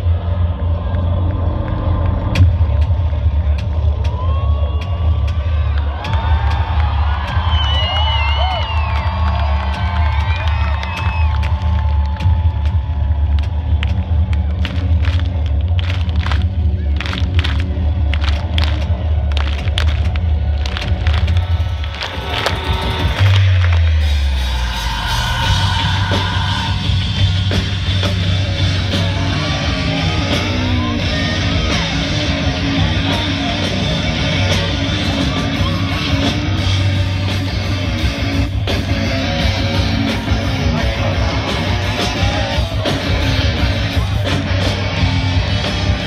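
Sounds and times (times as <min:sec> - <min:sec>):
concert intro music over speakers: 0:00.0 - 0:46.0
crowd cheering: 0:00.0 - 0:46.0.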